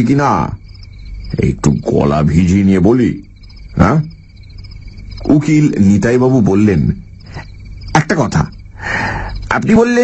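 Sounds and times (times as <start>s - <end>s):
man narrating: 0.0s - 0.6s, 1.3s - 4.2s, 5.2s - 7.1s, 7.9s - 8.6s, 9.5s - 10.0s
crickets chirping: 0.0s - 10.0s.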